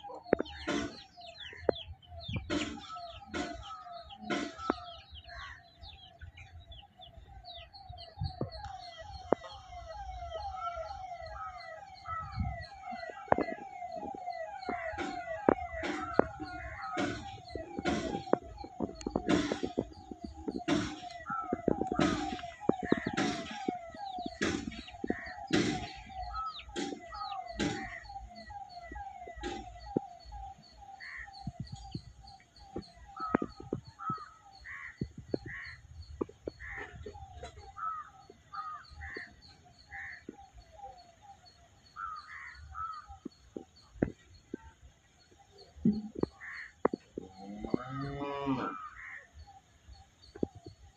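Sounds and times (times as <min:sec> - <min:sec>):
rapidly warbling tone: 0:00.0 - 0:05.2, 0:07.7 - 0:37.8.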